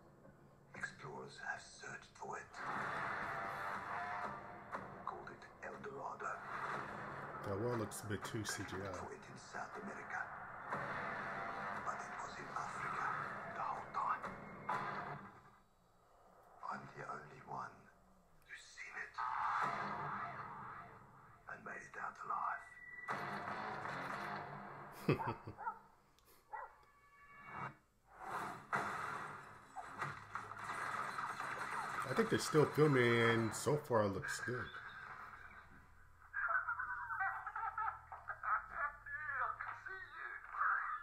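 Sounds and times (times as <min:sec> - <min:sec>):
tinny trailer music from speakers: 0:02.4 - 0:16.5, 0:19.2 - 0:21.4, 0:22.7 - 0:25.0.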